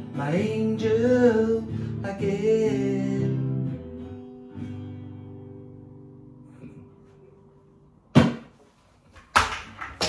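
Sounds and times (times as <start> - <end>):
guitar handling knocks: 8.1 - 8.6.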